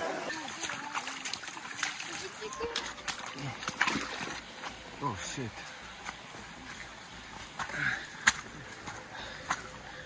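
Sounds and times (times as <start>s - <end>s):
footsteps splashing through stream: 0.0s - 10.0s.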